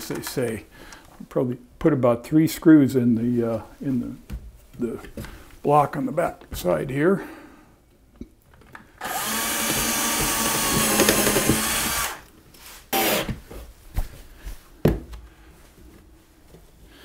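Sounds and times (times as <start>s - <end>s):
cordless drill driving screw: 9.0s - 12.3s, 12.9s - 13.3s.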